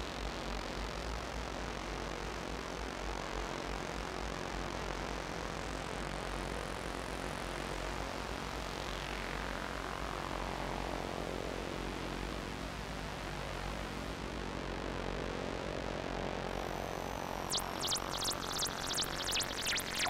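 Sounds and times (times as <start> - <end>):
synthesizer noise drone: 16.5 - 20.0.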